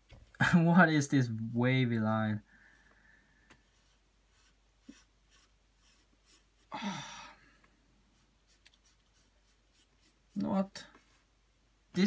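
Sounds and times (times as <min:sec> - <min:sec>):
pencil shading on paper: 0:03.6 - 0:06.7, 0:08.1 - 0:10.4.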